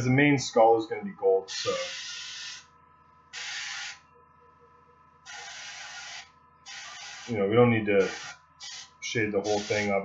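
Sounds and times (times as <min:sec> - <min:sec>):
airbrush spraying hiss: 0:05.3 - 0:07.4, 0:08.0 - 0:09.9.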